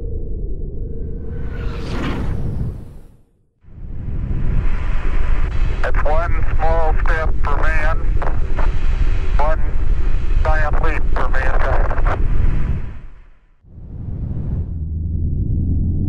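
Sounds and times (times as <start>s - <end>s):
loud low rumble: 0.0s - 16.0s
windy hiss: 3.8s - 13.5s.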